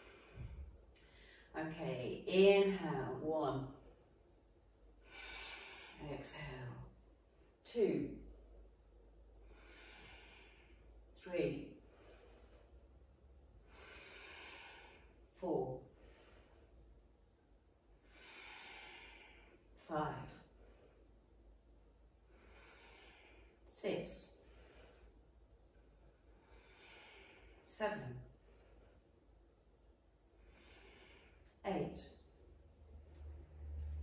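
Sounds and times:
woman breathing: 0.0 - 1.6, 3.7 - 7.6, 8.4 - 34.0.

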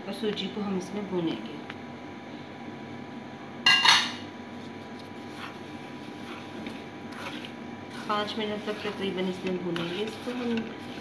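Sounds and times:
stirring semolina in metal pan: 4.8 - 11.0.

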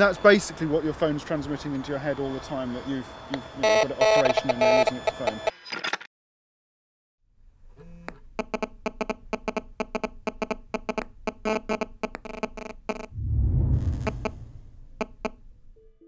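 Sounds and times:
low rumbling swell: 13.1 - 15.0.

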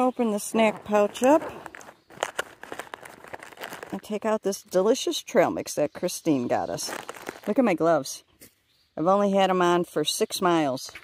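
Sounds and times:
plastic bag crinkling: 0.4 - 4.3, 6.7 - 7.7.

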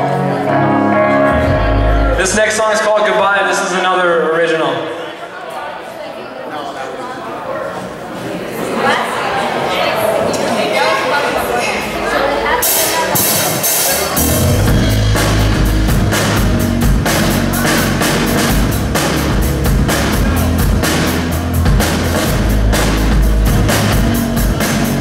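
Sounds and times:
hard rock band playing: 0.0 - 3.1, 12.5 - 25.0.

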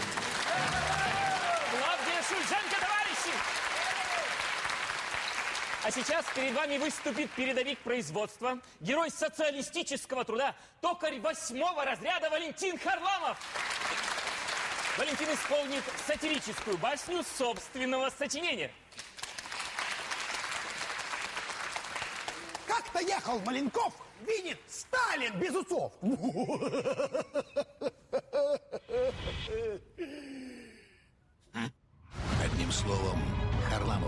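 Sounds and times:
audience applauding: 0.0 - 7.9, 13.3 - 17.9, 18.9 - 23.7.

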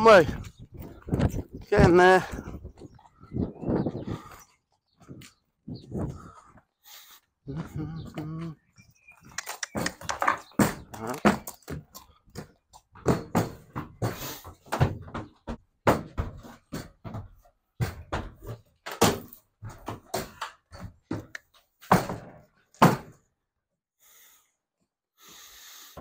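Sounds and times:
horse hooves on trailer ramp: 9.7 - 23.1.

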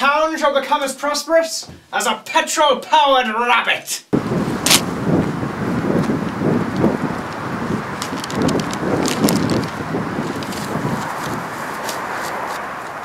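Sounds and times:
wind rumbling on microphone: 4.2 - 13.0
uneven footsteps: 4.5 - 13.0.

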